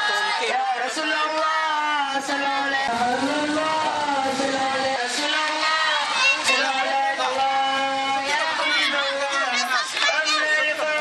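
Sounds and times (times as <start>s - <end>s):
mourners chanting a lament: 0.0s - 11.0s.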